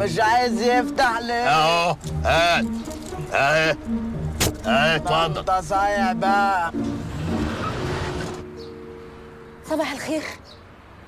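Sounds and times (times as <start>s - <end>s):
music with held notes: 0.0s - 9.8s
car driving off: 2.0s - 9.5s.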